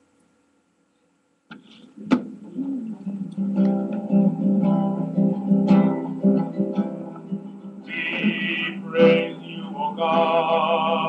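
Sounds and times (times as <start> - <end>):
acoustic guitar strum: 1.6 - 11.0.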